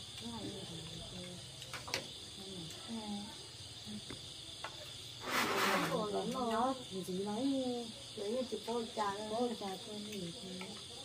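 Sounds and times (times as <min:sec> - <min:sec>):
crickets chirring: 0:00.0 - 0:11.0
short loud hiss: 0:05.2 - 0:06.0.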